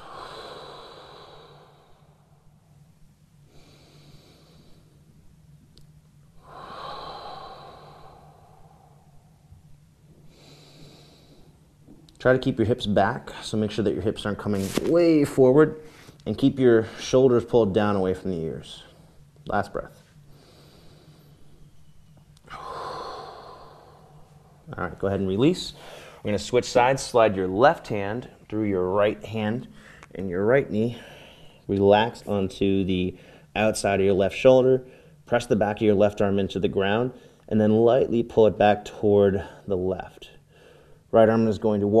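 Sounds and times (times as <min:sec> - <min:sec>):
man breathing deeply: 0:00.0 - 0:02.6, 0:03.4 - 0:05.2, 0:06.4 - 0:11.7, 0:20.2 - 0:24.7, 0:25.7 - 0:26.3, 0:30.9 - 0:31.7, 0:33.2 - 0:33.5, 0:40.4 - 0:41.1
steady low hum: 0:00.0 - 0:42.0.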